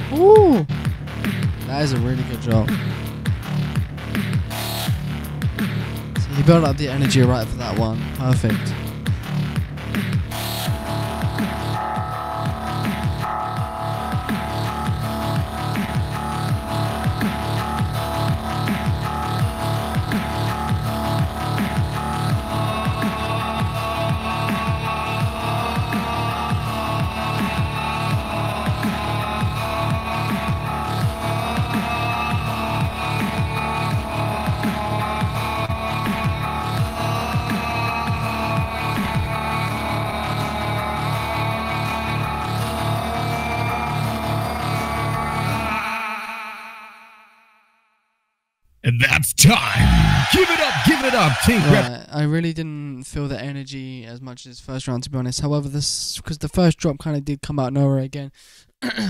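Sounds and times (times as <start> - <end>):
person singing melody: 0.0 - 0.7
vocal bass beat: 0.0 - 0.8, 48.9 - 51.9
beatboxed drums: 0.0 - 11.8, 48.9 - 51.9.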